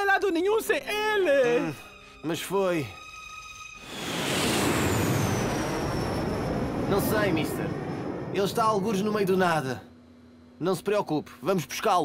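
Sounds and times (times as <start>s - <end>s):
cartoon jet flying past: 3.8s - 8.7s.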